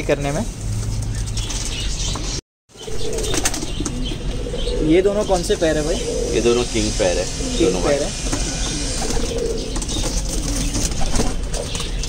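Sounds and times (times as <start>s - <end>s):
pigeons cooing: 2.8s - 12.0s
pigeon flapping wings: 9.0s - 12.0s.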